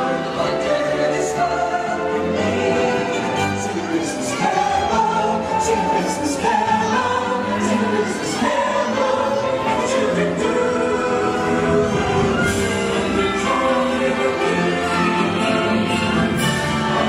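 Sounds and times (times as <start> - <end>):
voices singing with orchestra: 0.0 - 17.0.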